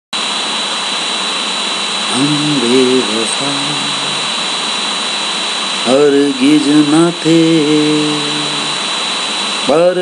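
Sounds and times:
loud steady hiss: 0.1 - 10.0
high-pitched whine: 0.2 - 10.0.

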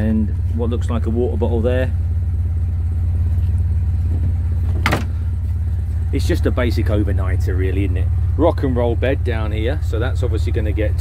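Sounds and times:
engine idling with low rumble: 0.0 - 11.0.

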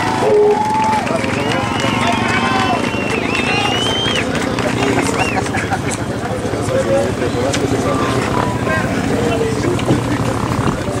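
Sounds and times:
motorcycle engines running: 0.0 - 11.0
people's voices: 0.0 - 11.0.

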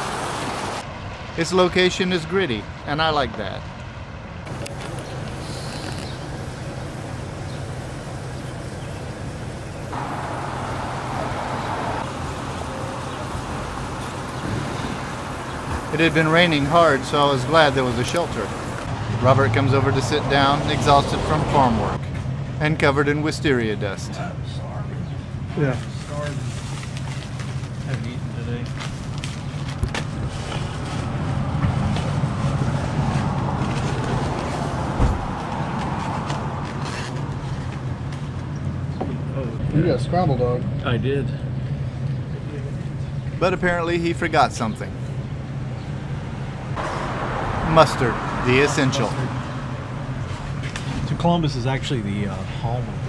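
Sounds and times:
vehicle tyre hiss: 0.0 - 0.9, 4.5 - 18.9
traffic on a wet street: 0.0 - 2.8, 3.6 - 22.5, 25.7 - 39.4, 41.5 - 53.0.

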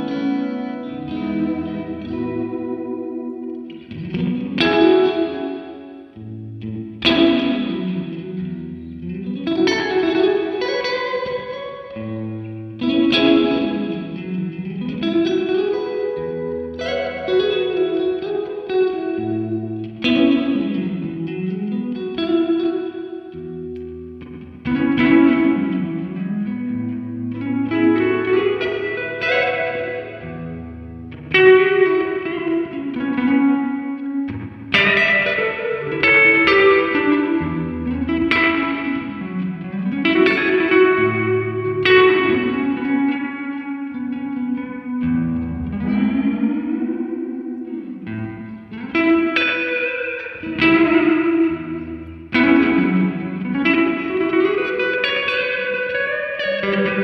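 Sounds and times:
electric guitar with spring reverb: 0.0 - 57.0.

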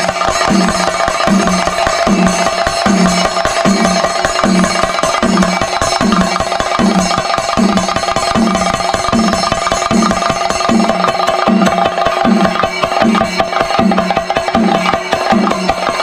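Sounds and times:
deep drum beat: 0.0 - 16.0
rapid drum strokes: 0.0 - 16.0
ringing tones: 0.0 - 16.0.

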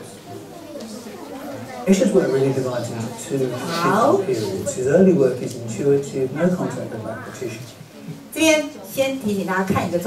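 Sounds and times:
quiet chatter of voices: 0.0 - 10.0
man narrating: 1.9 - 7.8.

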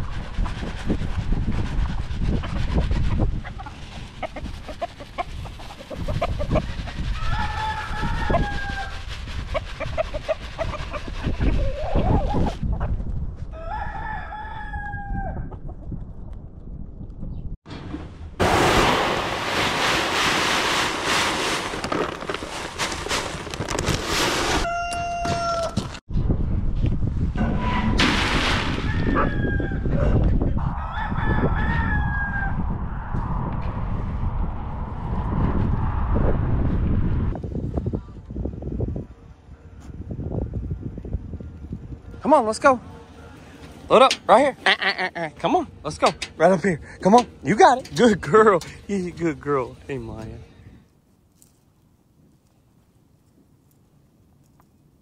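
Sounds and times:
roosters crowing: 6.4 - 9.1, 13.5 - 15.5, 24.5 - 26.0, 28.8 - 33.2
feed pellets poured into bucket: 18.7 - 24.6.

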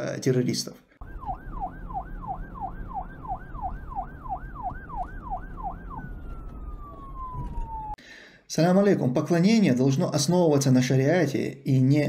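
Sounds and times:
siren yelping: 1.0 - 8.0.

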